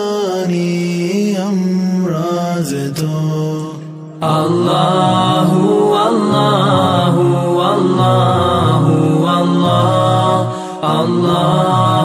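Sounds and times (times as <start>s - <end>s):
devotional music: 0.0s - 12.0s
voice chanting long sung notes: 0.0s - 12.0s.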